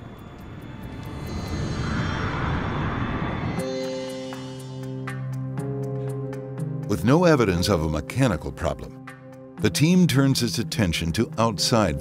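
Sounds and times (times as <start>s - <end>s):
jet engines running at high power: 0.0s - 5.4s.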